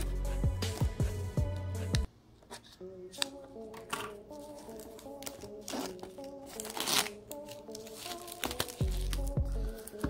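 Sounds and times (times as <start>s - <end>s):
background music: 0.0s - 2.1s, 2.8s - 10.0s
plastic shrink-wrap crinkling: 4.4s - 10.0s.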